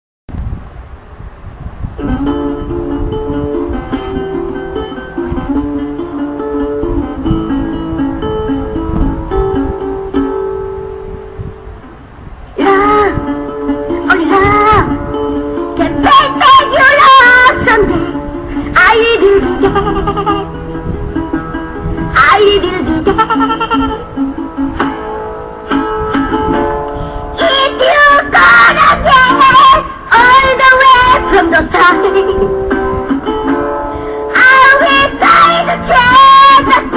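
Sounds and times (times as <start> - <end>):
acoustic guitar strumming: 2.0 - 36.9
woman singing: 12.6 - 15.0, 15.8 - 20.5, 22.1 - 24.0, 27.4 - 32.6, 34.3 - 36.9.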